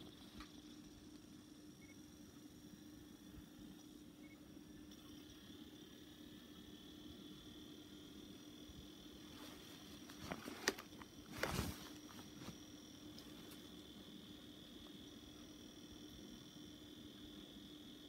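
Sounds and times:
dvd player whine: 0.0s - 18.0s
faint steady hum: 0.0s - 18.0s.

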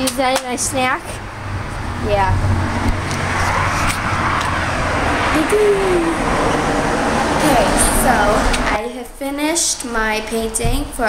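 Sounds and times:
loud steady rushing noise: 0.0s - 11.0s
girl singing: 7.4s - 11.0s.

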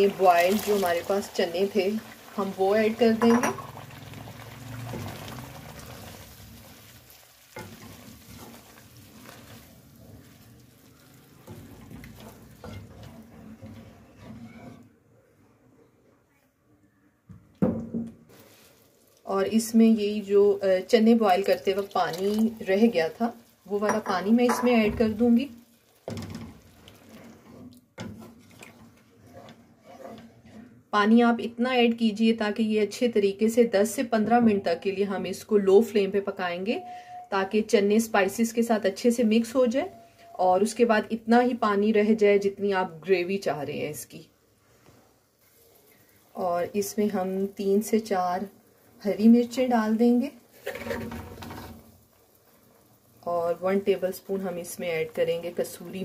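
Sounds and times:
chickpeas sizzling in oil: 0.0s - 14.9s, 18.2s - 31.4s, 37.5s - 56.0s
wooden spoon stirring in pan: 0.0s - 15.0s, 18.3s - 31.2s, 44.5s - 56.0s
spoon knocking and scraping pan: 3.0s - 3.8s, 7.6s - 10.4s, 11.1s - 14.9s, 23.7s - 25.4s, 26.0s - 30.8s, 50.5s - 52.0s.

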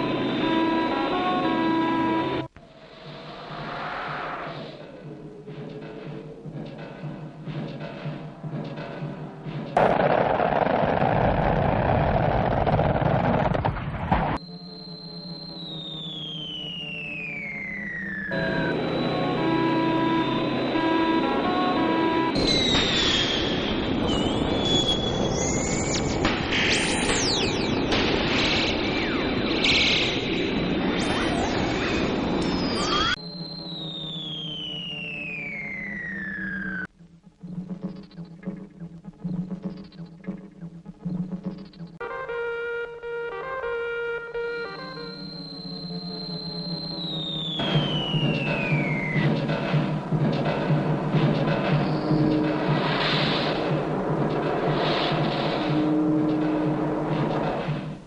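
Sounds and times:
long falling whistle: 14.4s - 26.1s, 32.4s - 36.9s, 44.3s - 49.3s
squealing warbling glides: 28.9s - 33.2s.

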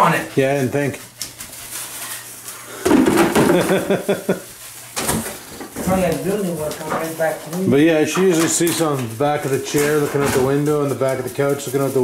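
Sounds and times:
handling and rustling: 0.0s - 12.0s
man laughing: 3.3s - 4.5s.

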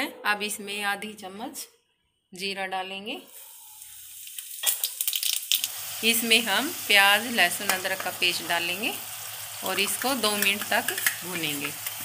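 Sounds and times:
seeds sizzling in hot oil: 3.3s - 12.0s.

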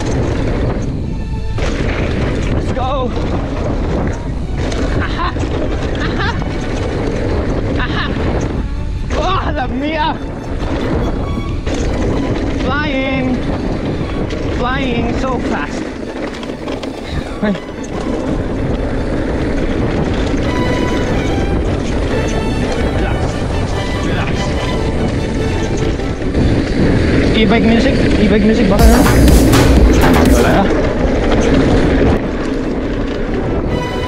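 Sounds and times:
tyres rolling over dirt: 0.0s - 34.0s
wind on microphone: 0.0s - 34.0s.

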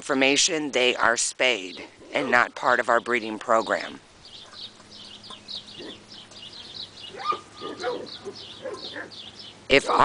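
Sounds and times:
pitched animal call: 4.4s - 10.0s.

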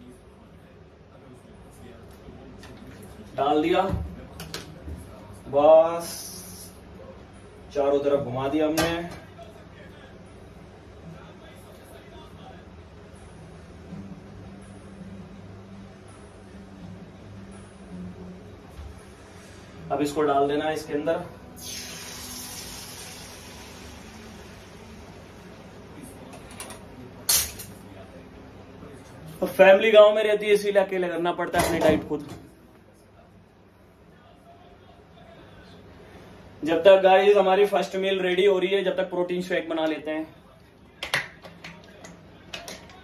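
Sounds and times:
egg sizzling in frying pan: 21.6s - 24.2s.

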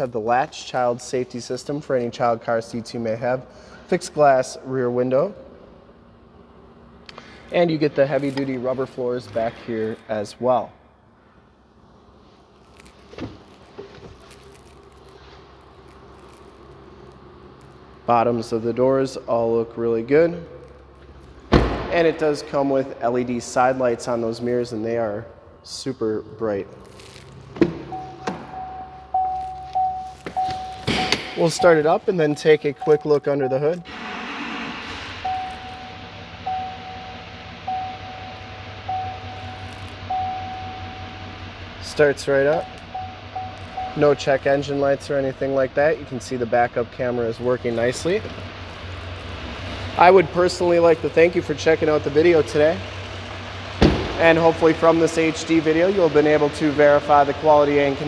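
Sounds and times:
diesel engine cranking and idling: 0.0s - 58.0s
dashboard warning chime: 27.9s - 33.9s, 35.2s - 41.4s, 42.6s - 44.2s.

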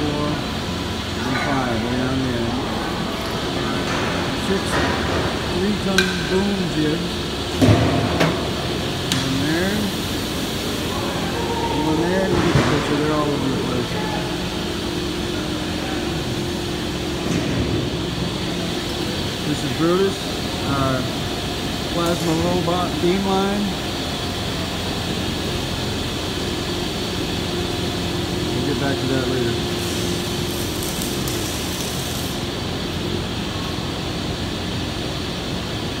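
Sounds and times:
machinery and ventilation hum: 0.0s - 36.0s.

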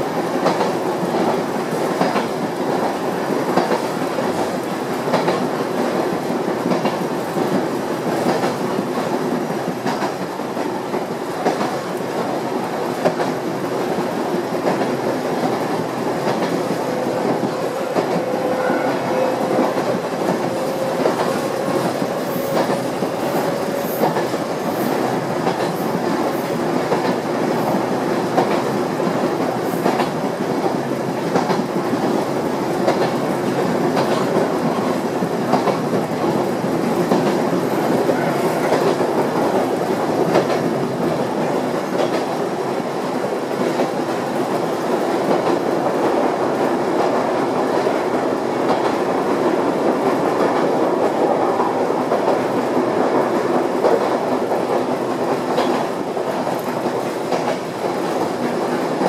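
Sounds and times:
train wheels rumbling on rail: 0.0s - 59.0s
clack of rail joints: 0.3s - 59.0s.

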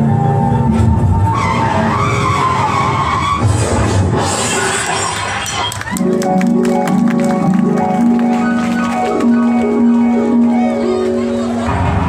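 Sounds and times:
backing music: 0.0s - 12.0s
car tyre screech: 0.7s - 5.6s.

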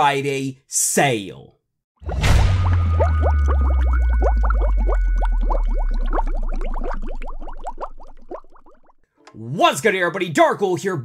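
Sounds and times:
deep bass drone: 2.0s - 8.8s
underwater bubbling blips: 2.0s - 9.0s.

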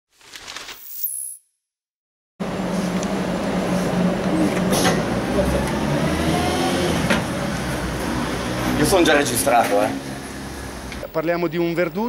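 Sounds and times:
street traffic: 2.4s - 12.0s.

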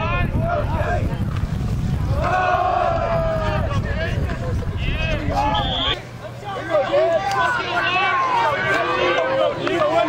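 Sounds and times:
people shouting: 0.0s - 1.2s, 2.0s - 10.0s
wind rumble on microphone: 0.0s - 6.0s
referee's whistle: 5.4s - 6.0s.

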